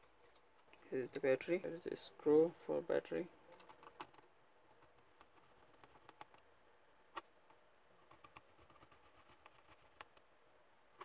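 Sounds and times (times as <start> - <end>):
faint clicks of laptop parts: 7.1 - 11.0.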